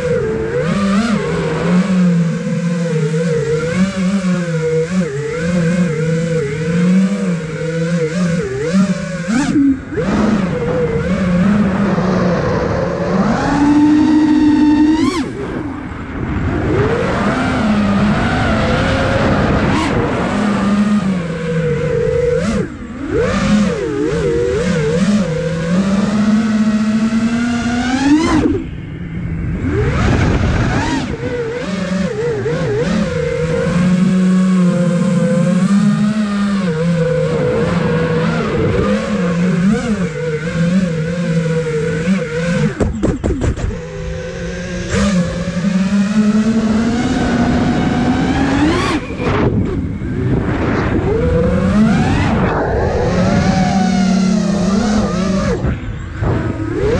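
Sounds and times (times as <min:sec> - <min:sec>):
drone propellers buzzing: 0:00.0 - 0:56.9.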